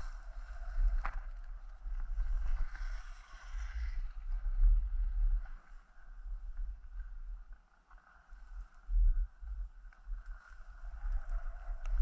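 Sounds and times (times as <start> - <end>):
skis sliding over snow: 0.0 - 6.0
wind buffeting microphone: 0.0 - 7.5, 8.6 - 12.0.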